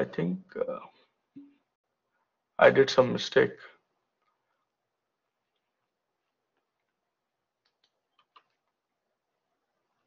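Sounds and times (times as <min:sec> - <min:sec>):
faint keyboard clicks: 0:07.6 - 0:08.9.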